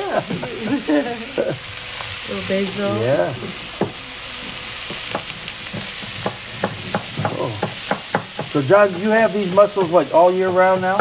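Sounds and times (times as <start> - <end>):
mussels sizzling in a frying pan: 0.0 - 11.0
knife chopping on wooden board: 4.9 - 9.1.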